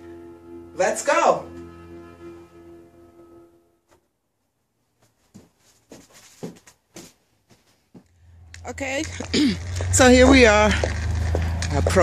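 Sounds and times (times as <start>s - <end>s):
footsteps on hard floor: 5.0s - 8.1s.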